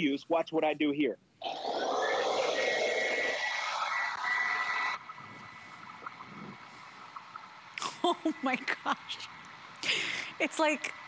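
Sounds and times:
carpet cleaner suction with whine: 1.4 - 5.0.

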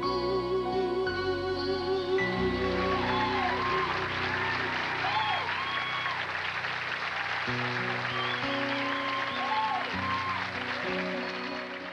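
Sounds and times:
descending whistles: 2.6 - 6.3, 8.0 - 10.6
audience applauding: 2.8 - 11.9.

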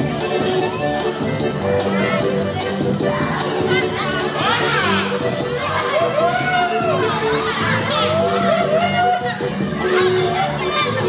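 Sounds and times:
children shouting and cheering: 0.0 - 11.0
folk dance music: 0.0 - 11.0.

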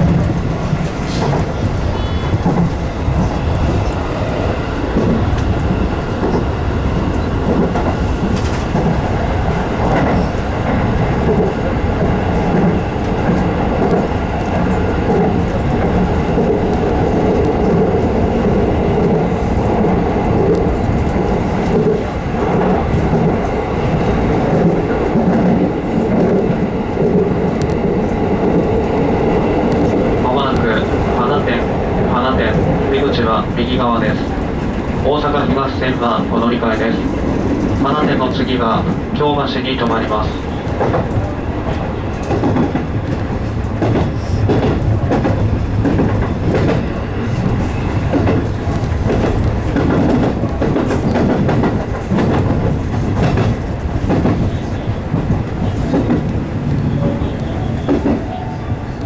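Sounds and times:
train humming tone: 0.0 - 59.0
train wheels rumbling on rails: 0.0 - 59.0.

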